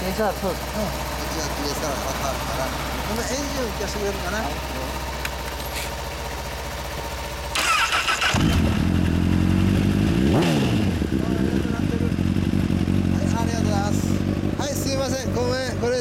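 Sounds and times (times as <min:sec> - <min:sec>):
motorcycle engine revving and idling: 0:00.0 - 0:16.0
motorcycle starter cranking: 0:07.5 - 0:09.0.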